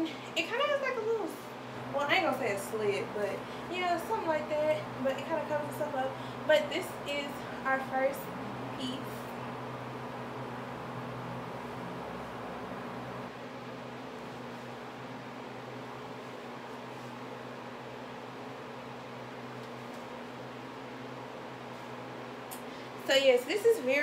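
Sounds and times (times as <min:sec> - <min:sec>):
low hum: 0:01.6 - 0:19.0.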